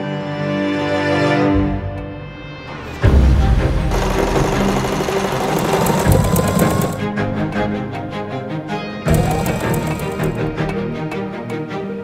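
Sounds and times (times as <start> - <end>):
stitching machine running: 3.9 - 7.1, 9.1 - 10.5.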